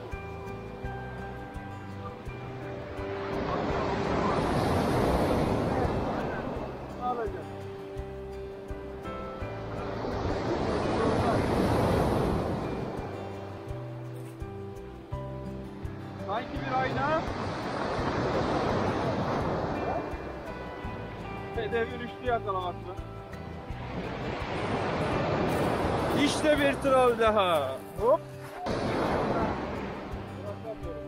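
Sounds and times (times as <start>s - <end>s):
background music: 0.0s - 31.0s
waves breaking on pebble beach: 2.9s - 7.4s, 9.8s - 13.1s, 16.2s - 20.5s, 23.8s - 27.7s, 28.4s - 30.8s.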